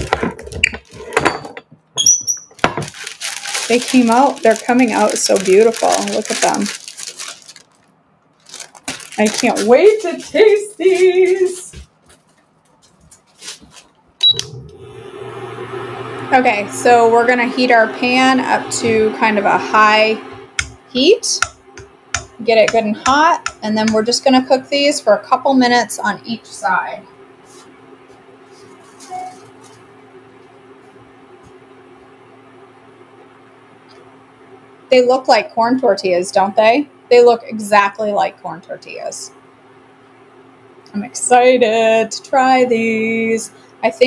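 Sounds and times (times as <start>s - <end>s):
induction burner humming: 0.0s - 11.8s, 14.2s - 44.0s
paper rustling: 2.8s - 14.0s
induction burner clack and beep: 14.2s - 14.8s.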